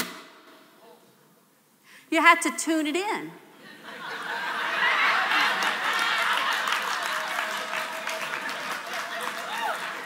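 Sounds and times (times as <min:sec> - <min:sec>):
woman speaking into microphone: 0:02.1 - 0:03.4.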